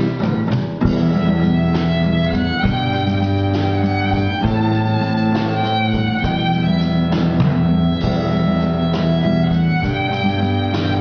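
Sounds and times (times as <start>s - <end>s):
cello: 0.0s - 11.0s
guitar: 0.0s - 11.0s
violin: 0.0s - 11.0s.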